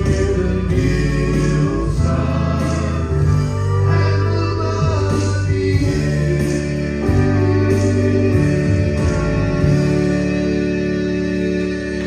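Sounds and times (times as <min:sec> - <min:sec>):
male vocal trio singing in harmony: 0:00.0 - 0:12.0.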